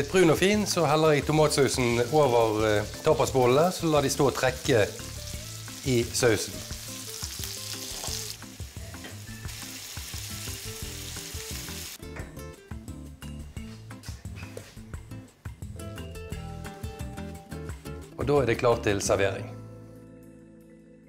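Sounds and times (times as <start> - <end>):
background music: 0.0 - 21.0
food sizzling in a frying pan: 0.1 - 12.0.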